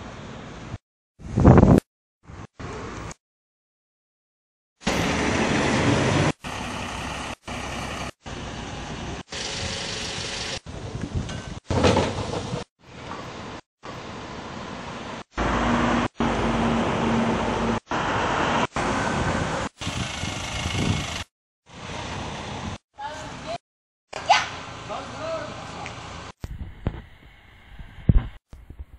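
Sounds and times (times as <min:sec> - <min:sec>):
street traffic: 0:02.3 - 0:03.2, 0:04.8 - 0:26.4
small trucks passing: 0:04.8 - 0:10.6, 0:12.0 - 0:23.6.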